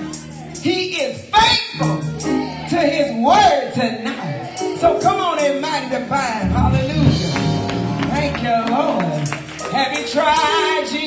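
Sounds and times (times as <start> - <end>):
church band playing: 0.0 - 11.0
drum and percussion hits: 6.4 - 9.5.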